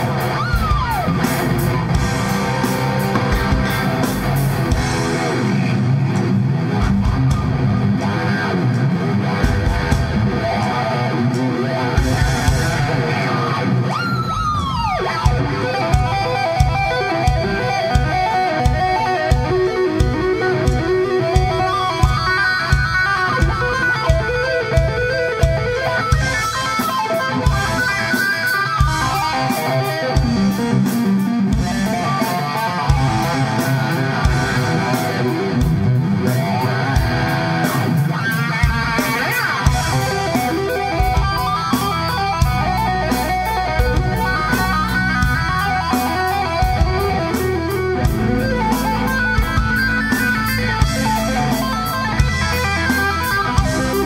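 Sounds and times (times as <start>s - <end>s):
steady drum beat: 0.0s - 13.8s, 14.4s - 54.0s
bass guitar: 0.0s - 54.0s
electric guitar lead: 0.0s - 54.0s.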